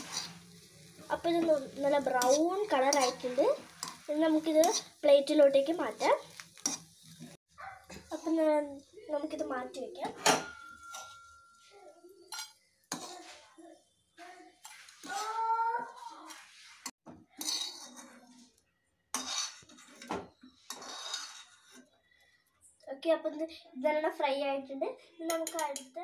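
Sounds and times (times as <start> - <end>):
spoon scraping and clinking on pan: 2.0 - 5.0, 6.3 - 7.3, 10.0 - 13.4, 14.6 - 15.3, 16.3 - 18.5, 19.1 - 21.9.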